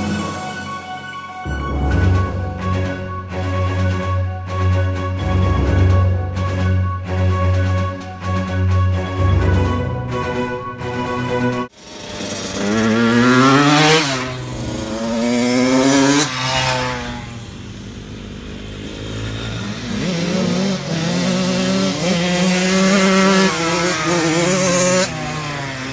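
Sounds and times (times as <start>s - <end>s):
dirt bike engine revving: 11.7s - 25.9s.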